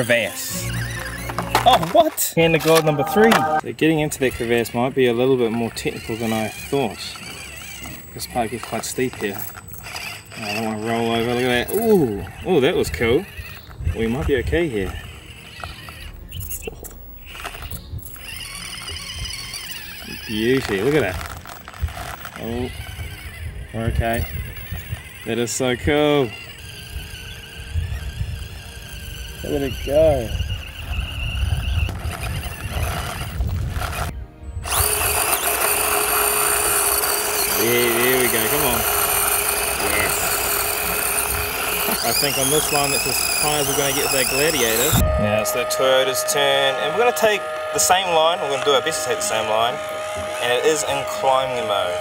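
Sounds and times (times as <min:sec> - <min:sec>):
small electric motor whining: 0:00.0 - 0:52.0.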